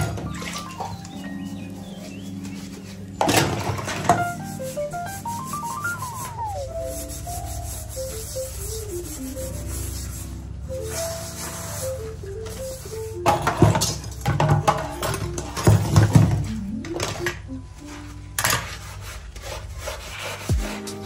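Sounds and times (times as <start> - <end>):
sponge scrubbing a steel pan: 0.0 - 16.3, 17.8 - 21.0
background music: 0.0 - 21.0.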